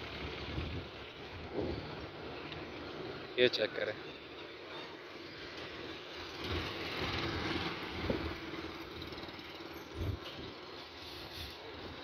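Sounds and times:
motor vehicle passing: 0:05.3 - 0:11.4.

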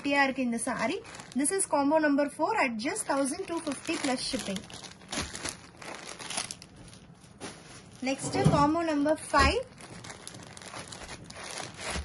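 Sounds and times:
fabric rustling: 0:02.9 - 0:12.0.

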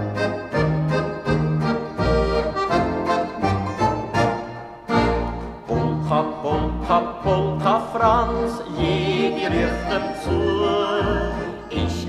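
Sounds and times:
accordion playing polka: 0:00.0 - 0:12.0.

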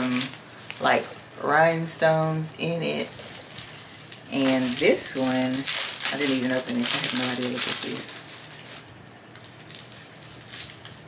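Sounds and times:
package crinkling and rustling: 0:00.0 - 0:01.9, 0:02.8 - 0:11.0.

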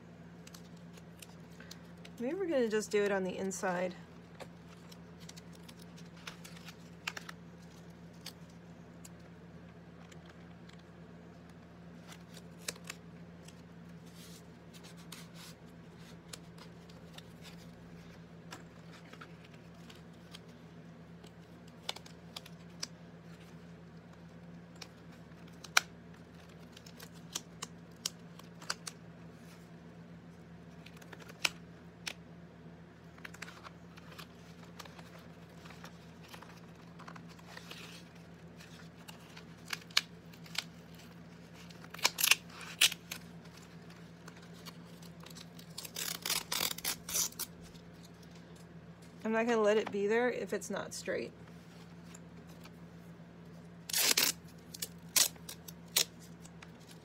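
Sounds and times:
steady low hum: 0:00.0 - 0:57.0
tape and paper handling clicks: 0:04.3 - 0:09.3, 0:09.9 - 0:29.7, 0:30.7 - 0:32.2, 0:33.1 - 0:49.2, 0:53.8 - 0:57.0.

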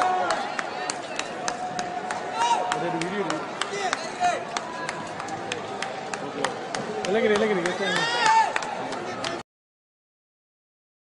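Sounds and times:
people talking and calling out: 0:00.0 - 0:09.4.

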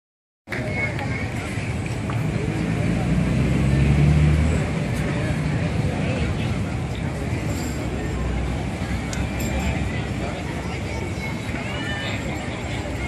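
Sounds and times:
audience chatter: 0:00.5 - 0:13.0.

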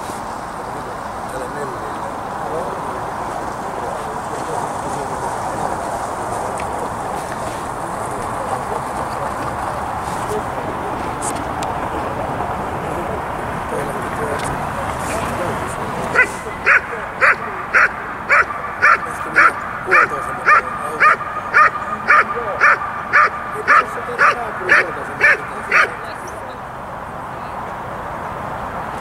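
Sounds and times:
dog barking: 0:16.1 - 0:26.3.

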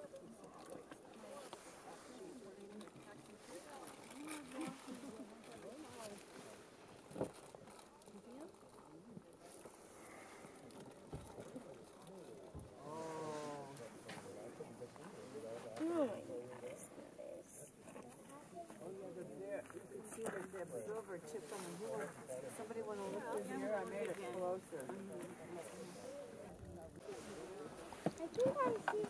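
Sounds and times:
people speaking quietly: 0:00.0 - 0:29.0.

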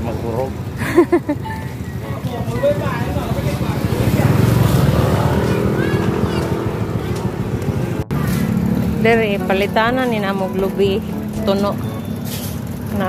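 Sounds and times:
vehicle engine passing by: 0:01.8 - 0:13.0.

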